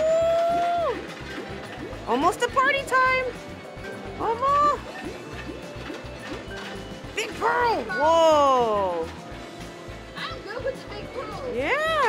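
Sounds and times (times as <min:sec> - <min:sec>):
jingly music with rising blips: 0:00.8 - 0:12.0.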